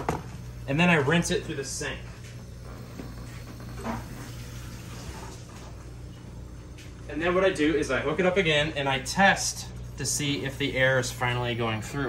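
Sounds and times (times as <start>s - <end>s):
aquarium air pumps humming: 0.0s - 12.0s.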